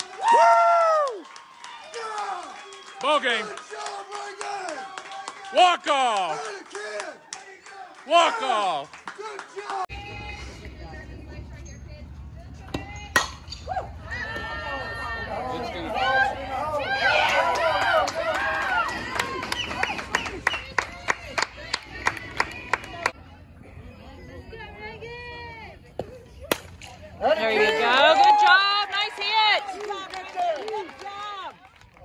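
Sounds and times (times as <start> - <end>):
spectators shouting and cheering: 0.0 - 10.6, 12.8 - 23.2, 27.2 - 31.6
bat cracking on ball: 26.0 - 27.0.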